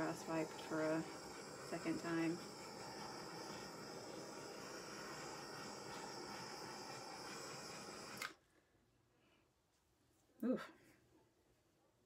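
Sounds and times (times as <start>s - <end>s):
handheld torch hissing: 0.0s - 8.4s.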